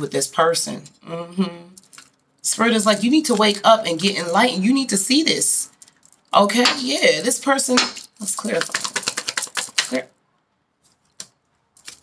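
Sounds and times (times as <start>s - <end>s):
cards being shuffled: 8.0s - 10.0s, 10.8s - 12.0s.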